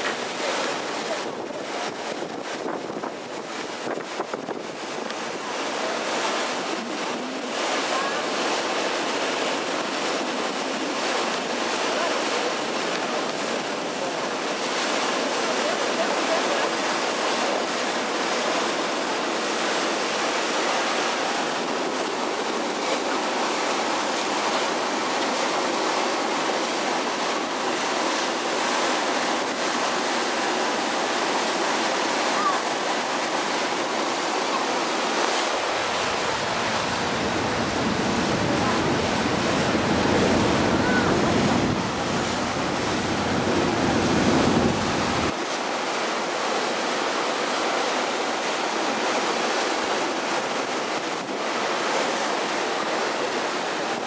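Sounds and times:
wind and water rushing past boat: 0.0 - 54.0
wind buffeting microphone: 35.4 - 45.4.

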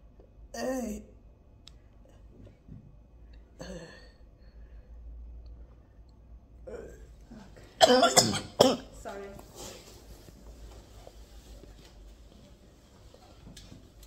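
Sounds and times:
woman coughing: 7.8 - 9.0.

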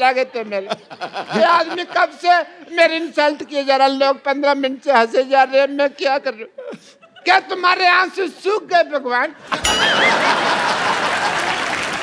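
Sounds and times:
wavering high note: 9.6 - 10.5
audience applauding: 9.8 - 12.0.

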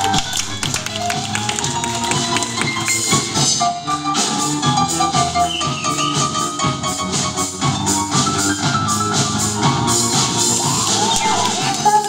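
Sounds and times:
live band playing pop: 0.0 - 12.0
piano notes: 0.0 - 12.0.

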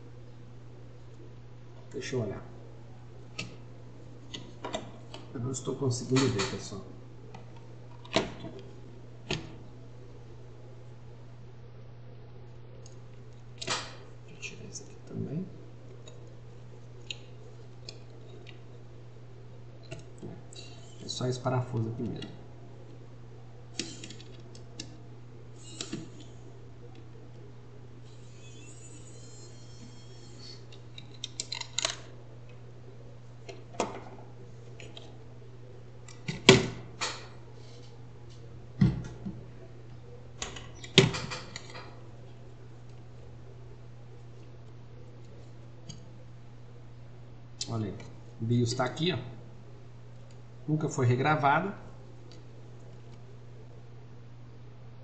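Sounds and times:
steady low hum: 0.0 - 55.0
high squeak: 28.1 - 30.6.

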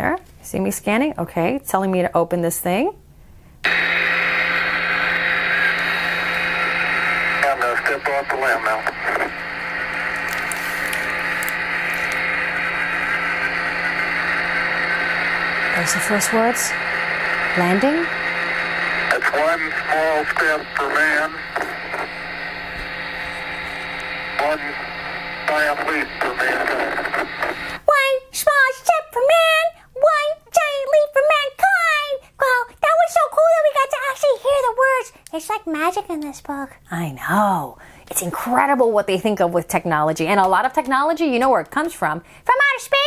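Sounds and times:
low hum: 3.6 - 27.8
radio static hiss: 3.7 - 27.9.

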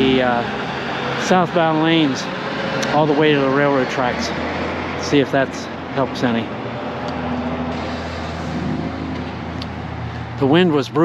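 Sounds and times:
low engine hum: 0.0 - 11.0
road traffic rushing: 0.0 - 11.0.

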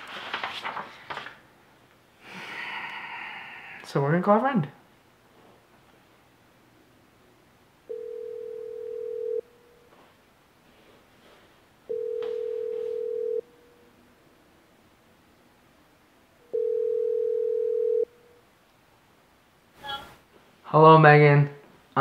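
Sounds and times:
telephone ringback tone: 7.9 - 9.8, 11.9 - 13.6, 16.5 - 18.2.

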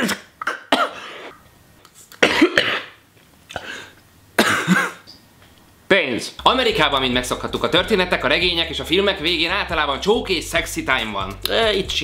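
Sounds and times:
man coughing: 0.0 - 1.3, 2.2 - 5.0.

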